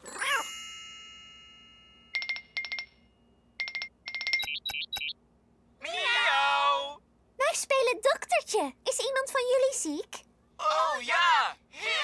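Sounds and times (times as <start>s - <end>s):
chime: 0.0s - 4.5s
electronic beeps and blips: 4.4s - 5.1s.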